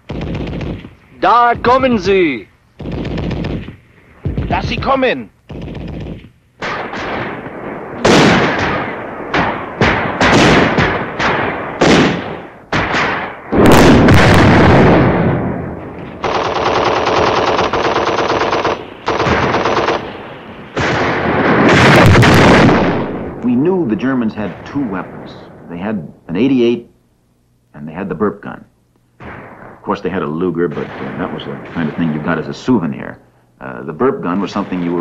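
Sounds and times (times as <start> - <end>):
rapid machine-gun fire: 0.0 - 2.1, 2.8 - 15.6, 16.2 - 23.2
loud single gunshots echoing: 6.6 - 15.7.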